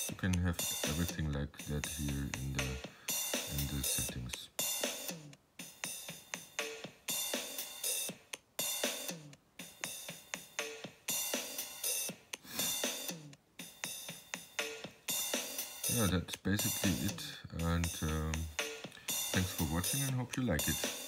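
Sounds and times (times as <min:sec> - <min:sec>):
glitchy drum machine beat: 0:00.0 - 0:21.0.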